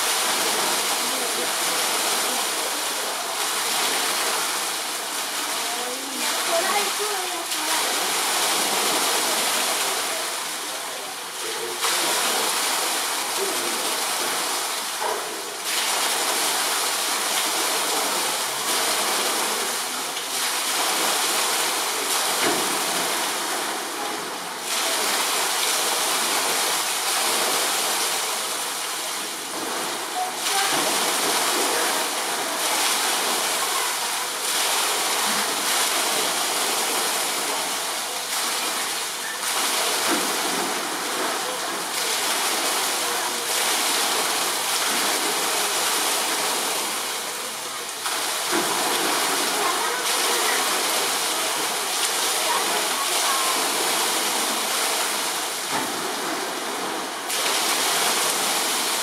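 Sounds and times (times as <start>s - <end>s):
running water rushing: 0.0s - 59.0s.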